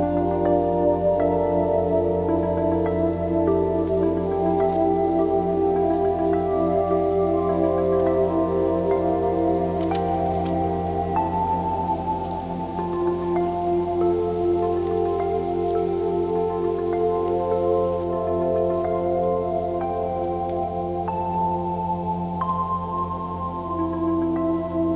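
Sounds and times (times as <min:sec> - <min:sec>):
slow ambient music: 0:00.0 - 0:24.9
twigs crackling: 0:00.0 - 0:24.9.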